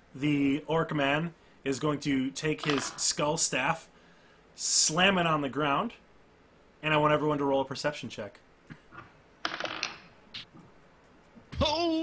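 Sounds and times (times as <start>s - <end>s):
dice clattering on a table: 2.6s - 3.0s, 9.4s - 10.1s.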